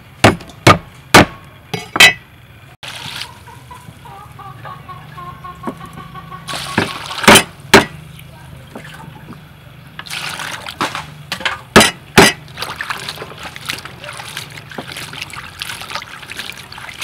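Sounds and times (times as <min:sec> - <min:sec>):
water running into bowl: 0:10.0 - 0:11.0, 0:12.2 - 0:17.0.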